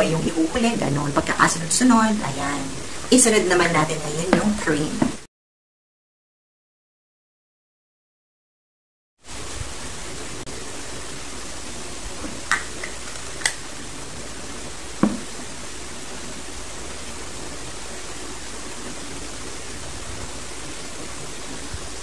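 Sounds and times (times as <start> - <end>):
room hiss: 0.0 - 5.3, 9.2 - 22.0.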